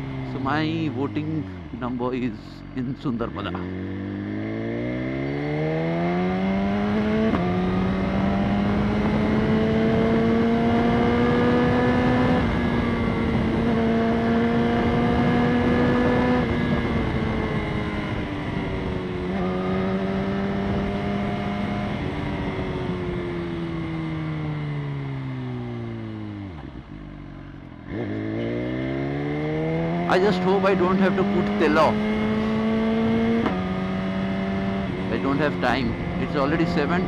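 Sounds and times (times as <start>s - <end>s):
motorcycle engine revving: 2.7s - 37.0s.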